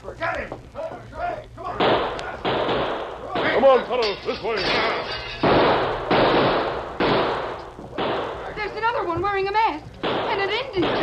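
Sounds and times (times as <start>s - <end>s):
gunshot bang: 4.8s - 8.4s.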